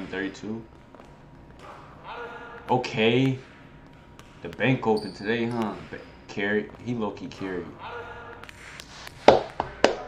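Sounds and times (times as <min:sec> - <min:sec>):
basketball bouncing on hardwood floor: 0:00.0 - 0:10.0.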